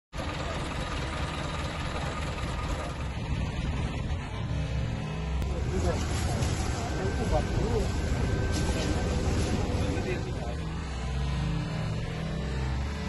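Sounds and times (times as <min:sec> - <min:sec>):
bus engine running: 0:00.2 - 0:13.0
voices in background: 0:05.4 - 0:11.4.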